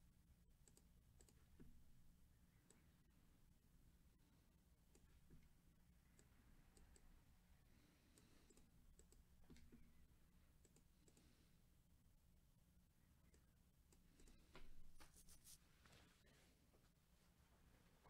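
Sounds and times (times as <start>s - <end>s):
computer mouse clicks: 0.6s - 1.8s, 4.9s - 5.5s, 6.1s - 7.1s, 8.1s - 9.9s, 10.6s - 11.4s, 13.2s - 14.5s.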